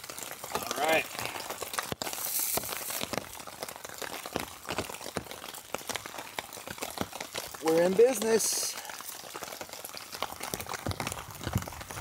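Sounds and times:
fat crackling and popping: 0.0s - 12.0s
food sizzling in skillet: 2.0s - 3.2s.

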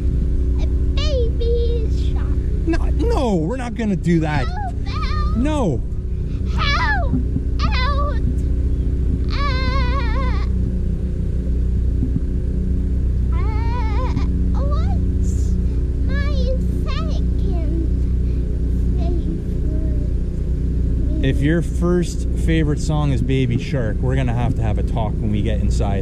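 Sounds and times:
steady low rumble: 0.0s - 26.0s.

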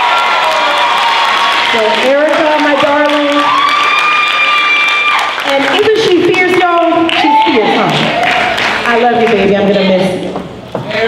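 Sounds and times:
audience applauding and cheering: 0.0s - 9.4s.

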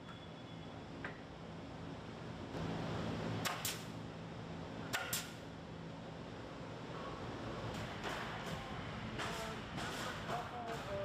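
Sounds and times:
low hum of factory machinery: 0.0s - 11.0s
nail gun shots into wood: 3.4s - 3.9s.

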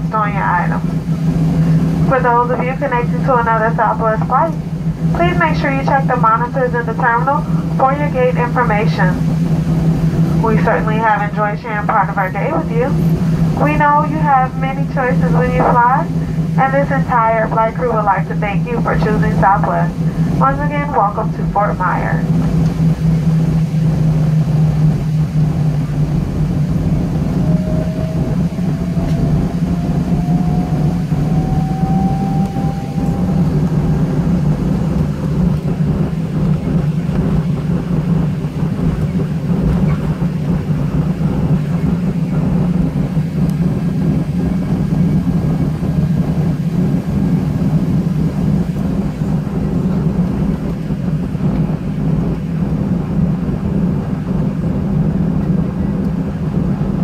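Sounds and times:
jet engines idling hum: 0.0s - 57.0s
rising engine whine: 0.0s - 57.0s.

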